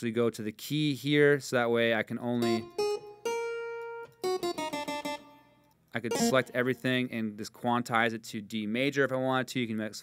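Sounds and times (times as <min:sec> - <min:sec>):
harpsichord notes: 0:06.1 - 0:06.8.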